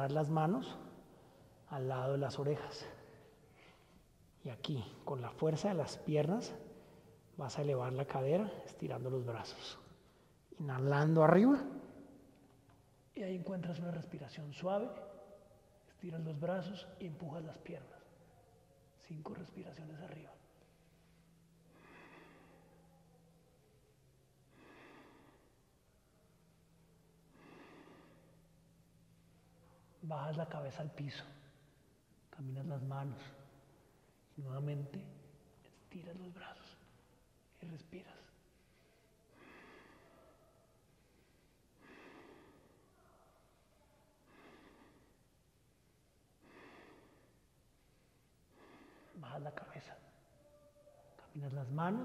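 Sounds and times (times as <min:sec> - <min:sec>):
man breathing deeply: 0:20.7 - 0:23.2, 0:24.4 - 0:29.8, 0:38.4 - 0:43.6, 0:44.2 - 0:49.2.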